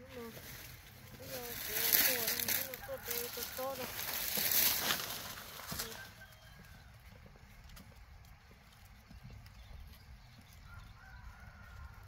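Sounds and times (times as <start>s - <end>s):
plants rustling: 0.0s - 6.3s
low outdoor background: 0.0s - 12.0s.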